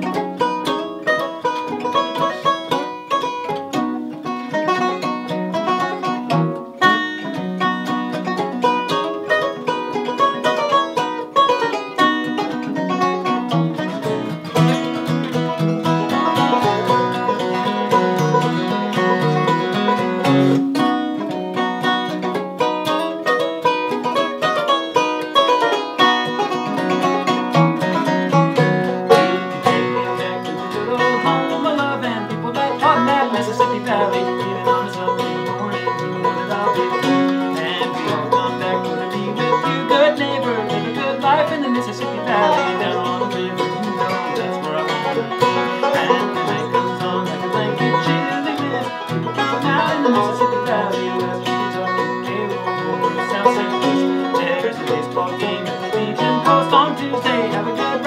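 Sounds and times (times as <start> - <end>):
acoustic guitar: 0.0 - 58.0
banjo: 0.0 - 58.0.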